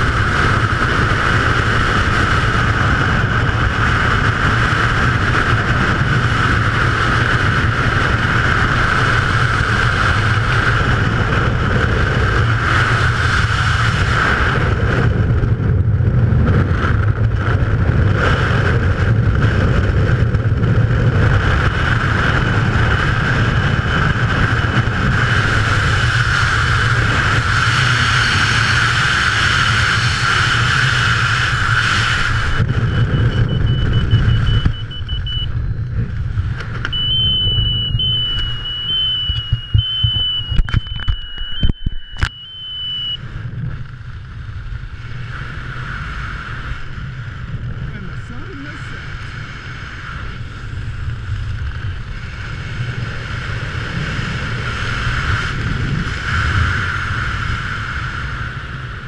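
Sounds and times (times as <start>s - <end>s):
loud wind rushing over microphone: 0.0s - 59.0s
uneven wind: 0.0s - 59.0s
thin high whine: 31.4s - 43.6s.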